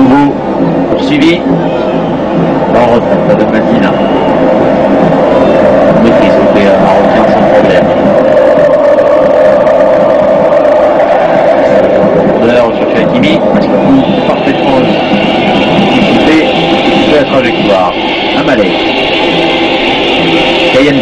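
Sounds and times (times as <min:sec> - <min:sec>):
commentator speaking: 0:00.0 - 0:01.6, 0:02.7 - 0:04.0, 0:05.9 - 0:08.0, 0:12.4 - 0:18.9, 0:20.7 - 0:21.0
football crowd noise: 0:00.0 - 0:21.0
sustained droning band: 0:00.0 - 0:21.0.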